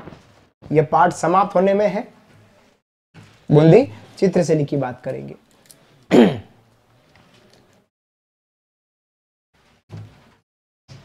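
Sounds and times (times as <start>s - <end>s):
man clearing his throat: 6.1s - 6.6s.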